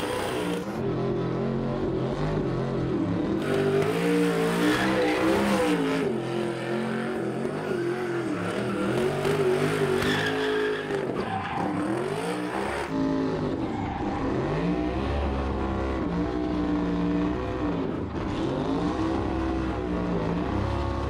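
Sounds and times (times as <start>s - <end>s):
race car engine revving: 0.0s - 21.0s.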